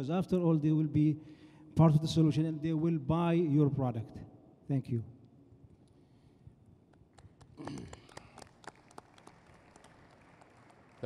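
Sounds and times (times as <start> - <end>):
scattered hand clapping: 6.9 - 11.0.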